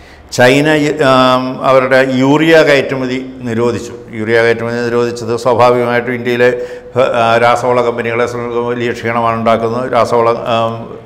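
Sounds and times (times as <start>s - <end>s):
man reading aloud: 0.3s - 11.0s.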